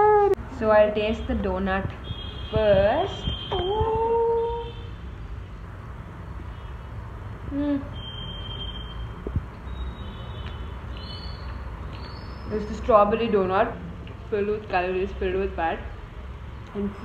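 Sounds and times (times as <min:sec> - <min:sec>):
woman humming while eating: 0:07.5 - 0:08.0.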